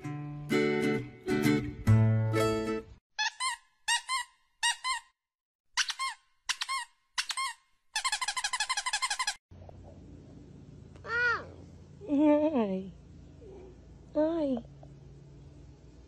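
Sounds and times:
toy squeaks: 3.2 - 5.1, 5.8 - 9.4
faint low hum: 9.6 - 16.0.

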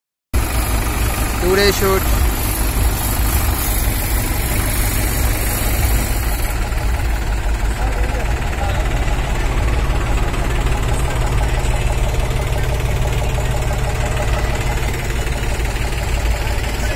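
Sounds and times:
tractor diesel engine running: 0.4 - 16.9.

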